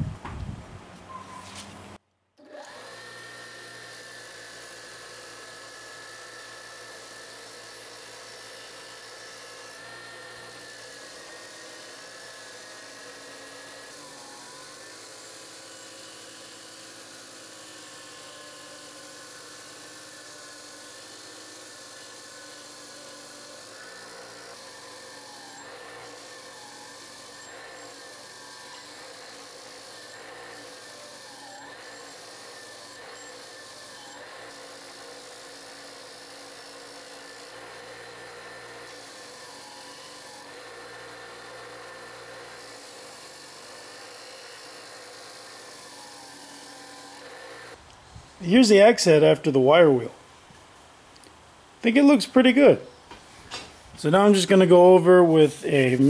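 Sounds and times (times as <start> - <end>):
bench grinder wire wheel: 1.0 - 50.0, 51.2 - 56.0.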